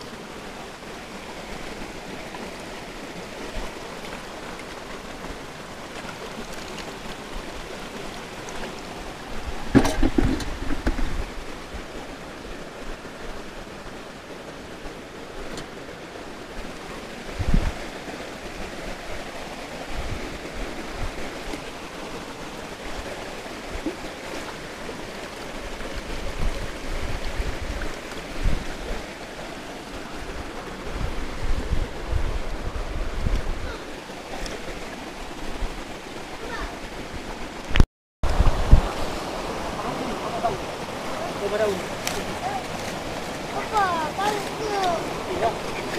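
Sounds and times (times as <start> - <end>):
stream rushing over stones: 0.0 - 45.9
low thumps and bumps: 9.5 - 11.4.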